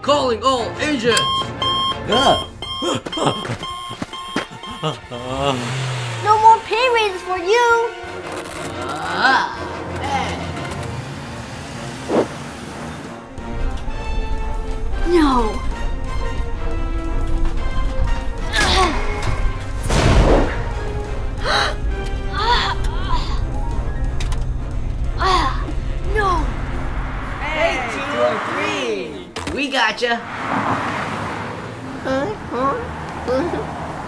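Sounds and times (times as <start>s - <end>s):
background music: 0.0s - 30.2s
high electronic alert beeps: 1.1s - 4.9s
explosion blast: 19.8s - 20.8s
person gasping or crying out: 21.4s - 21.8s.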